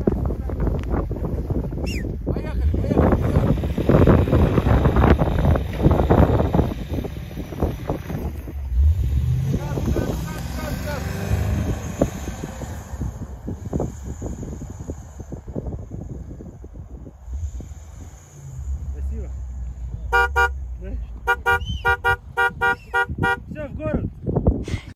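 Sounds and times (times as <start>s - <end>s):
wind buffeting microphone: 0.0s - 20.2s, 21.0s - 24.9s
suv engines revving: 0.0s - 23.7s.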